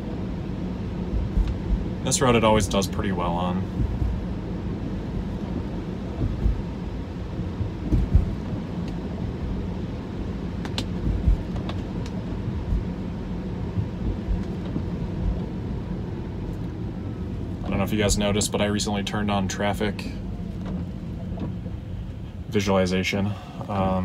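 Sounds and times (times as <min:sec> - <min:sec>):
low road rumble: 0:00.0 - 0:24.0
low thumps: 0:01.0 - 0:09.6, 0:10.6 - 0:18.2.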